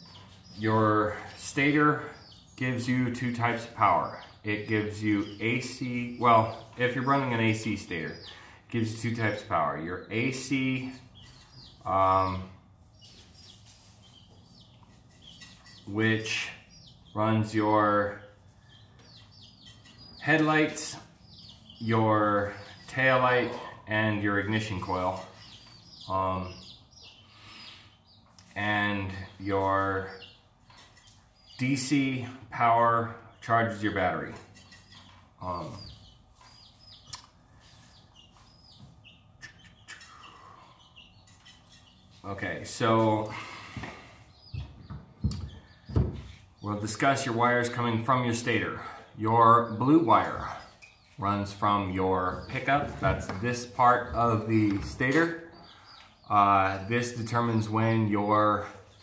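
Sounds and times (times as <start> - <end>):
small bird chirping: 0.0 - 59.0.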